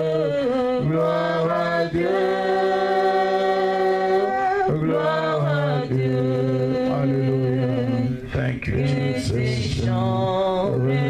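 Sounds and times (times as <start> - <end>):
worship singing: 0.0 - 11.0.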